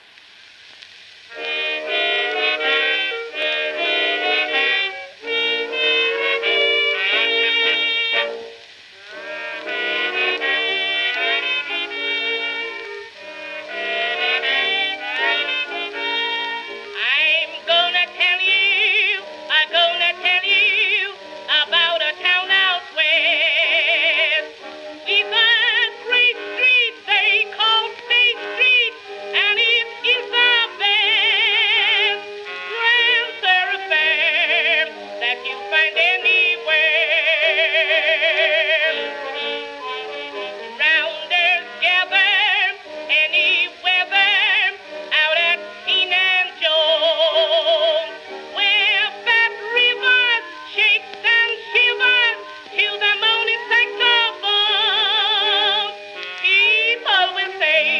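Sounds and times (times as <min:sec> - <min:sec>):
old blues record with contralto singing: 0:00.0 - 0:57.9
orchestra: 0:00.0 - 0:57.9.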